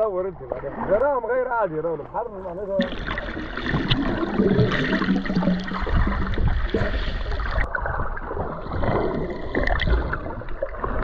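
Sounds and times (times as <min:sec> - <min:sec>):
water sloshing and bubbling: 0:00.0 - 0:11.0
low underwater rumble: 0:00.4 - 0:11.0.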